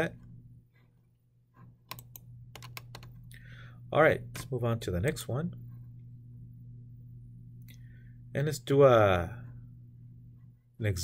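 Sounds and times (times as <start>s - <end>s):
low electrical hum: 0.0s - 11.0s
keyboard clicks: 1.9s - 3.2s.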